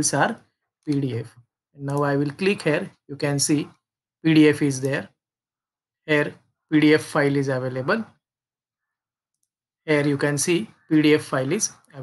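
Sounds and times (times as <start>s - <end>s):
man narrating: 0.0s - 5.2s, 6.0s - 8.2s, 9.9s - 12.0s.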